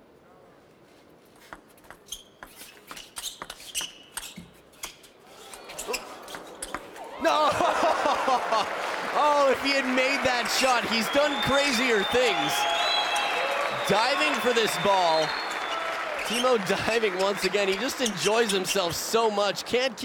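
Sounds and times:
crowd cheering and shouting: 5.3s - 20.0s.

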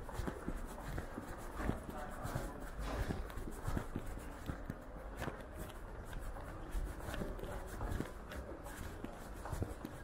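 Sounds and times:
footsteps on stone stairs: 0.0s - 10.0s
people talking in background: 0.0s - 10.0s.

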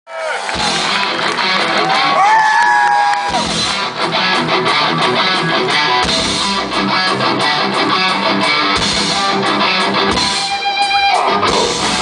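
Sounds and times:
rock band playing live: 0.3s - 12.0s
electric guitars: 0.4s - 12.0s.

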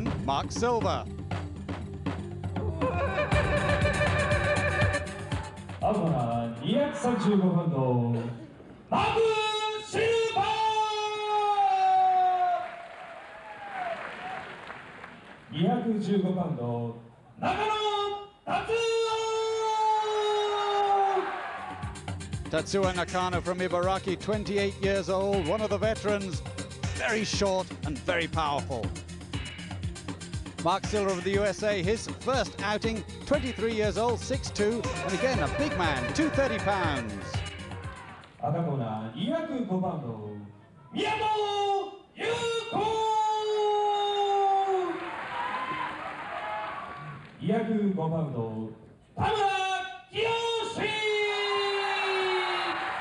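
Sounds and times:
ring announcer calling out name: 22.5s - 29.0s, 30.6s - 37.5s
announcer shouting: 33.5s - 38.0s.

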